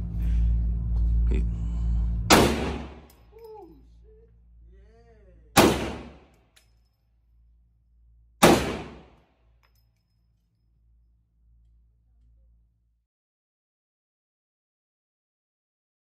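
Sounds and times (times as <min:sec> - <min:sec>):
rifle shots echoing indoors: 0:02.3 - 0:03.2, 0:05.6 - 0:06.6, 0:08.4 - 0:09.4.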